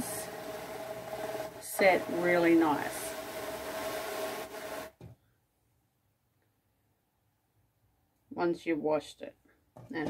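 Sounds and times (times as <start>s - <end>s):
drum carder whirring: 0.0s - 5.0s.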